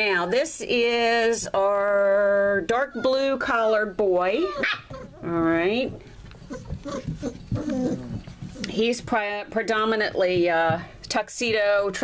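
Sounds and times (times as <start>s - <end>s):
puppies whimpering and grunting: 1.7s - 9.0s.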